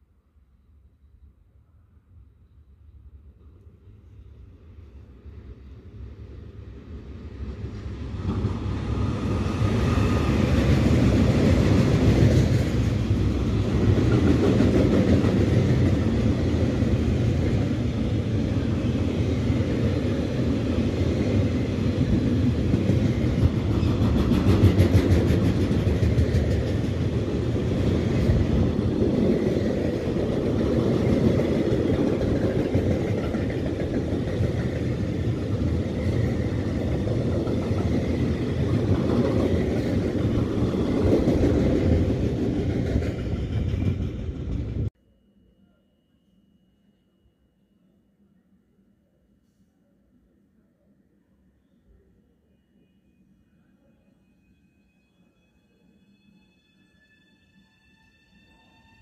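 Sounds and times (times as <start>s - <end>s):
freight train rumbling past: 3.2s - 45.0s.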